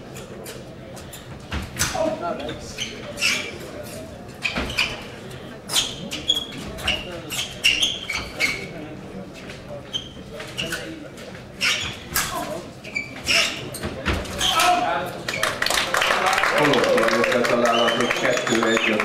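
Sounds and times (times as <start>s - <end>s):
shoes squeaking on floor: 0.1s - 15.5s, 17.6s - 19.0s.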